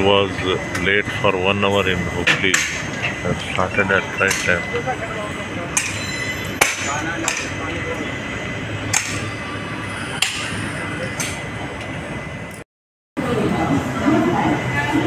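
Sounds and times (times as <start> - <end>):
passenger train running: 0.0 - 12.6, 13.2 - 15.0.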